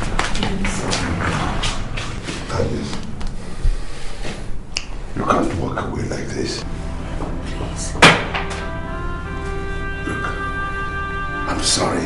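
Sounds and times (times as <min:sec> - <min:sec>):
steady low hum: 0:00.0 - 0:11.5.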